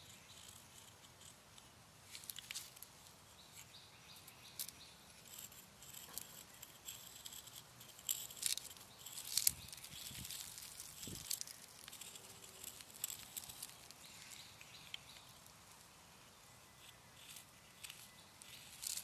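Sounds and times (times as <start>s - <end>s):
chalk scratching on asphalt: 4.7s - 14.8s, 16.7s - 19.0s.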